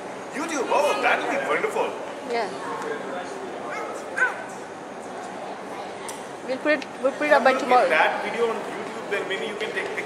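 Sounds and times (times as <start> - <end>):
murmur of voices in a hall: 0.0 - 10.0
high-pitched yelp: 3.7 - 4.6.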